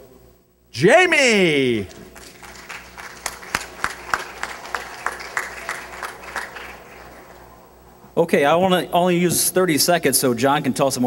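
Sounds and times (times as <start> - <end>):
audience applauding: 1.7 - 8.0.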